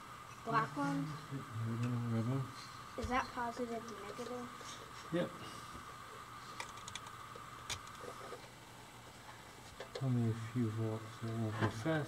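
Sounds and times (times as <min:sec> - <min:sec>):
faint high hum: 0:00.0 - 0:12.0
wire leads clicking and tapping: 0:06.6 - 0:08.0.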